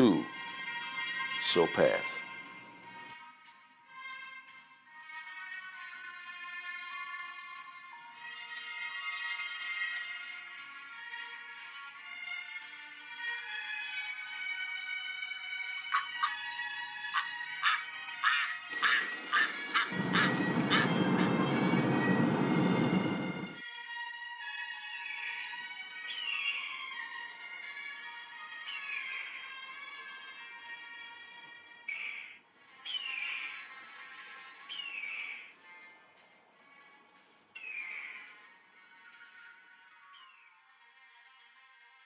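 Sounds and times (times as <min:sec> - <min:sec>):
background music: 0:00.0 - 0:42.0
bird of prey screeching: 0:15.9 - 0:16.4, 0:17.1 - 0:21.6
ducks quacking: 0:15.9 - 0:16.4, 0:17.2 - 0:22.4.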